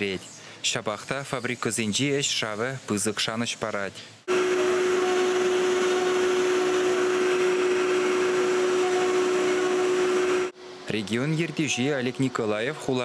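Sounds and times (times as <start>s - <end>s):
router machine whir: 4.3s - 10.6s.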